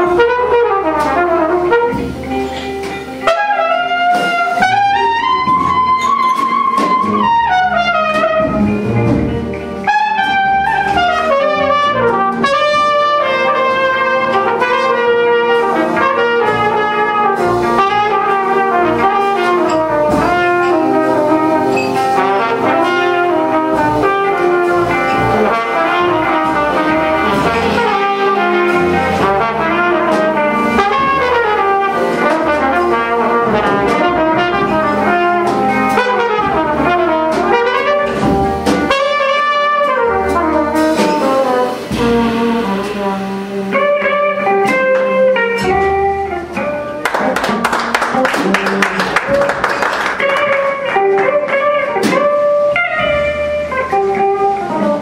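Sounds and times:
electric guitar: 0.0 - 39.0, 39.9 - 55.0
drum kit: 0.0 - 55.0
trumpet melody: 0.0 - 55.0
upright bass: 0.0 - 55.0.

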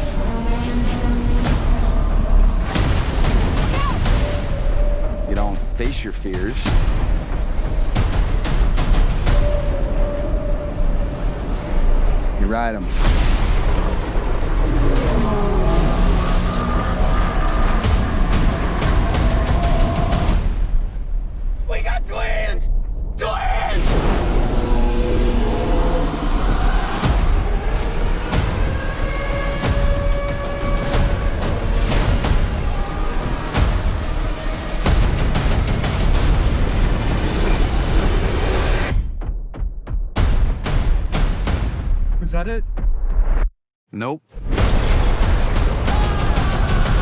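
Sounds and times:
dramatic trailer music: 0.0 - 43.5, 44.3 - 47.0
booming hits: 0.9 - 11.5, 22.8 - 43.2, 44.4 - 47.0
rumbling storm roar: 9.0 - 21.4, 23.1 - 38.9, 44.4 - 47.0.

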